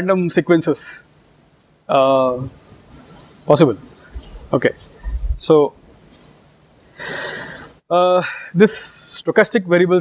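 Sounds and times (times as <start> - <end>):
faint room hiss: 0.0 - 10.0
man breathing in: 7.0 - 7.8.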